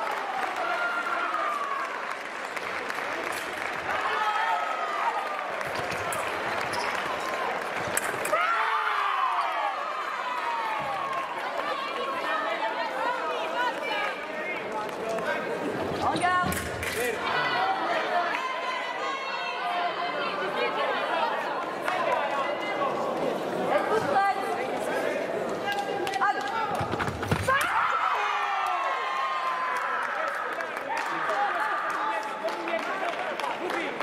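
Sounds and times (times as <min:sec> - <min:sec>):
chatter of voices in a hall: 0:00.0 - 0:34.0.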